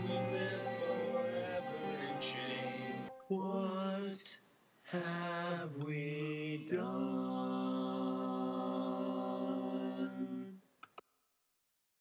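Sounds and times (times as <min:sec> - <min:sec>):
male voices singing held notes: 0:00.0 - 0:10.6.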